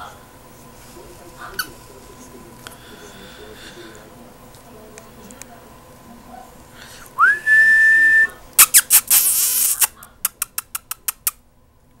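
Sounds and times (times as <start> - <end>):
person whistling: 7.2 - 8.3.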